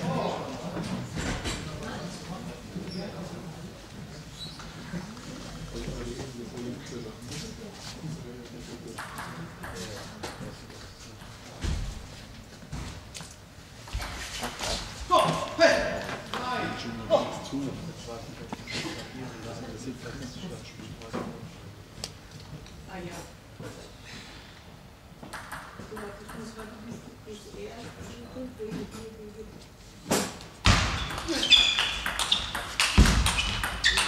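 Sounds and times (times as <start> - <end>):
murmur of voices: 0.0 - 11.4
table tennis ball bouncing: 9.0 - 10.5, 25.2 - 26.8, 30.6 - 34.0
table tennis ball clicking: 31.8 - 34.0.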